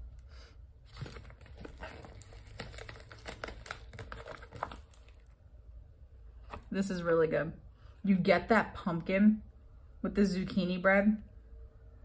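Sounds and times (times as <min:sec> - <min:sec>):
paper bag crinkling: 0:00.9 - 0:05.3.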